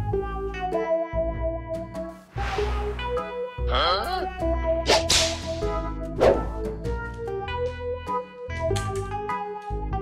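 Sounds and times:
wand toy swishing through air: 0:04.9 - 0:06.5.

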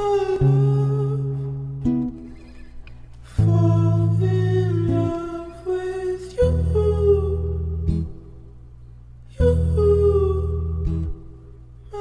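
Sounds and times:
hummed vocal: 0:00.0 - 0:01.9, 0:03.3 - 0:08.3, 0:09.3 - 0:12.0
plucked guitar: 0:00.0 - 0:12.0.

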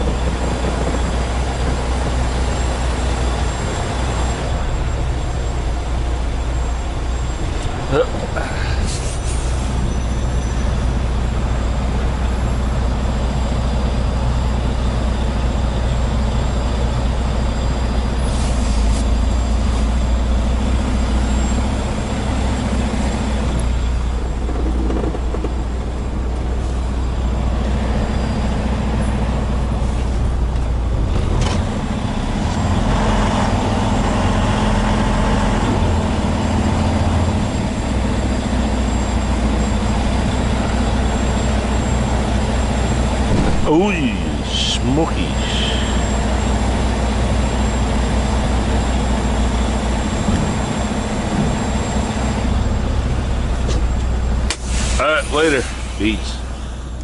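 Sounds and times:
diesel truck engine drone: 0:00.0 - 0:57.0.

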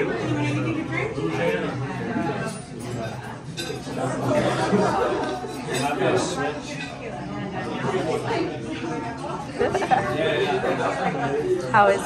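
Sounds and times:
diners chattering: 0:00.0 - 0:12.0.

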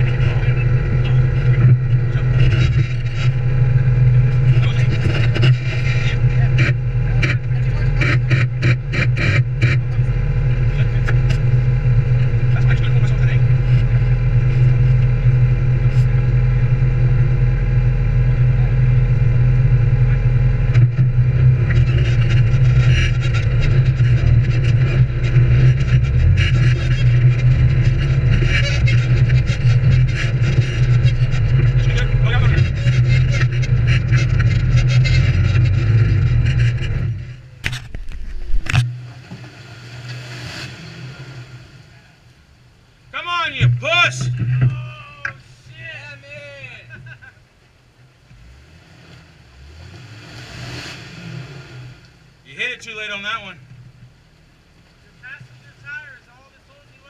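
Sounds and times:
off-road vehicle engine running: 0:00.0 - 0:57.0.

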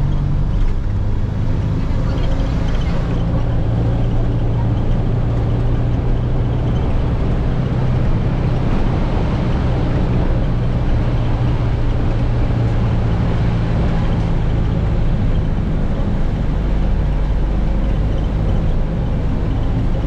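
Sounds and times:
bus engine hum: 0:00.0 - 0:20.0
road noise: 0:00.0 - 0:20.0.

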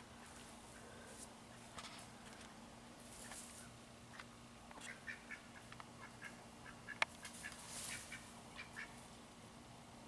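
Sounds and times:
ducks quacking softly: 0:04.8 - 0:09.0.

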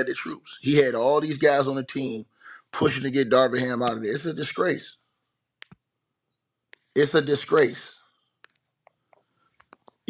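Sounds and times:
speech: 0:00.0 - 0:05.0, 0:07.0 - 0:08.0.

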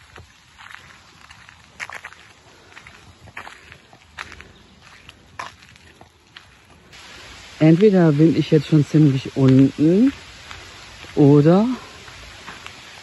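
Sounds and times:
footsteps on gravel: 0:00.0 - 0:13.0.

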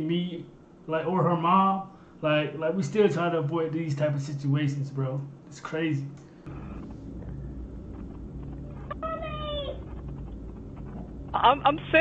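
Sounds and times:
low electrical hum: 0:00.0 - 0:12.0
girl's high-pitched call: 0:09.0 - 0:09.8.

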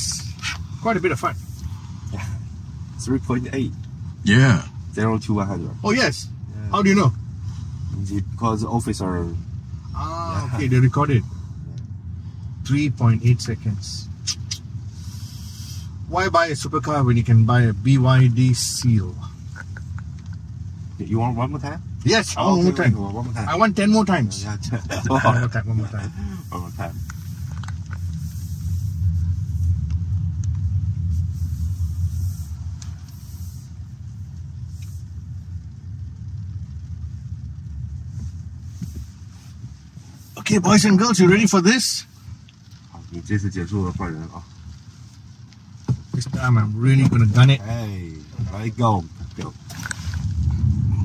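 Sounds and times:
low road rumble: 0:00.0 - 0:51.0
high hiss on wet surface: 0:13.5 - 0:16.6, 0:21.4 - 0:35.7, 0:37.0 - 0:50.4.

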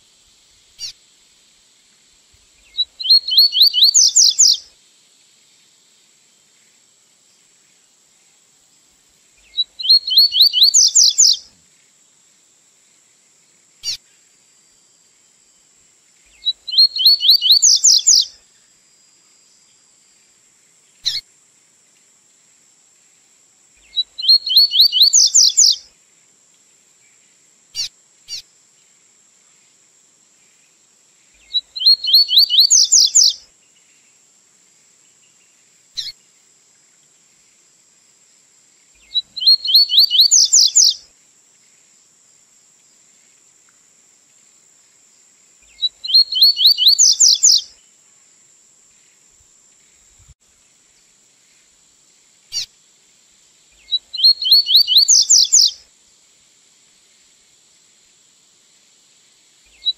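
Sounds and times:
faint high hiss: 0:00.0 - 0:59.9
bird singing whistled phrases: 0:02.7 - 0:04.6, 0:09.5 - 0:11.4, 0:16.4 - 0:18.3, 0:23.9 - 0:25.8, 0:31.4 - 0:33.4, 0:39.0 - 0:41.0, 0:45.7 - 0:47.7, 0:53.8 - 0:55.8.

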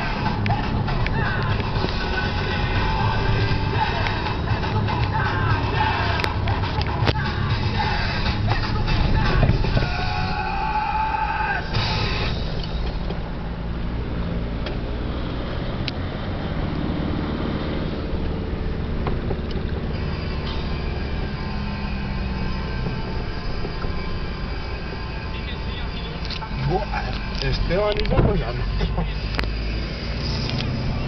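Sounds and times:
music: 0:00.0 - 0:13.4, 0:19.9 - 0:31.0
car engine and tyre noise: 0:00.0 - 0:31.0.

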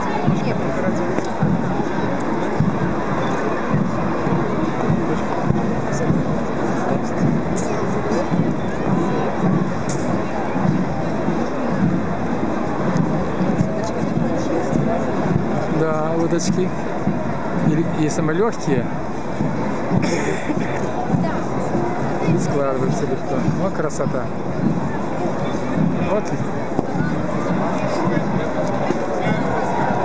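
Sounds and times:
crowd babble: 0:00.0 - 0:30.0
music: 0:00.0 - 0:30.0.

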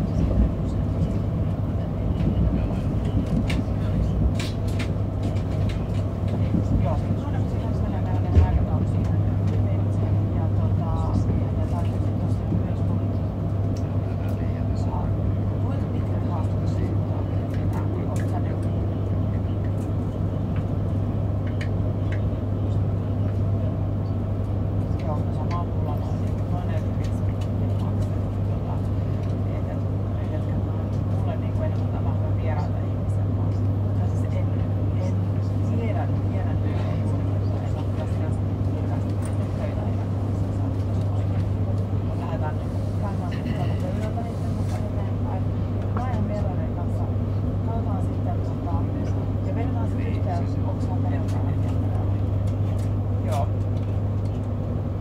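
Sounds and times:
train cabin hum: 0:00.0 - 0:55.0
train running gear rumble: 0:00.0 - 0:55.0.

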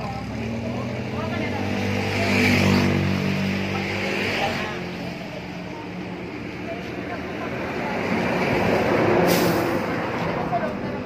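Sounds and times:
heavy vehicle passing: 0:00.0 - 0:11.0.

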